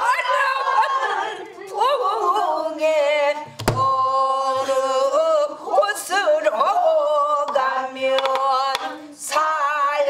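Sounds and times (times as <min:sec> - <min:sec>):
woman singing in a wavering voice: 0:00.0 - 0:10.0.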